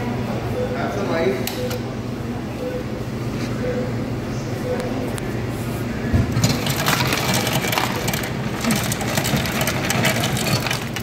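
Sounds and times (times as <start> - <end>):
ice dispenser mechanical hum: 0.0 - 11.0
ice cubes clattering into cup: 6.4 - 11.0.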